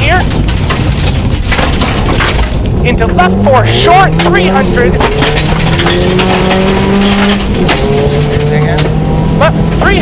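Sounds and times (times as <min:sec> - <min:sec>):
car engine running: 0:00.0 - 0:10.0
gravel clattering against car: 0:00.0 - 0:10.0.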